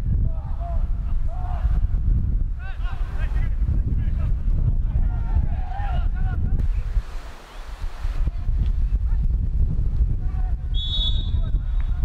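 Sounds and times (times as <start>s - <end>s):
wind buffeting microphone: 0.0s - 12.0s
referee's whistle blast: 10.7s - 11.5s.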